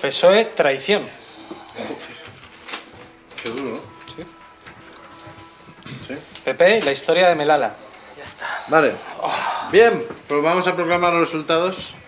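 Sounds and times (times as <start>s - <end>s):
paper ballots rustling: 1.2s - 8.2s.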